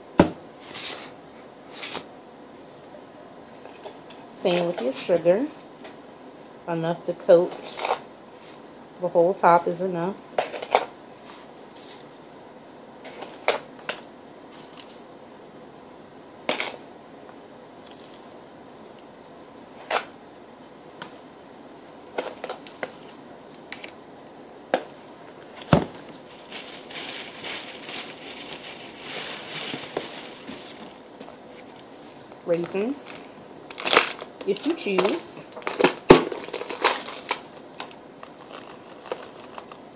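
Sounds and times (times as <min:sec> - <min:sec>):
crinkling and rustling: 0:22.1 - 0:24.0, 0:25.3 - 0:39.9.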